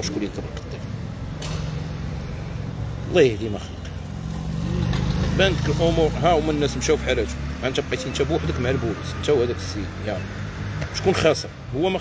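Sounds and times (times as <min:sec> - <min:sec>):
motorcycle engine approaching: 0:04.0 - 0:08.3.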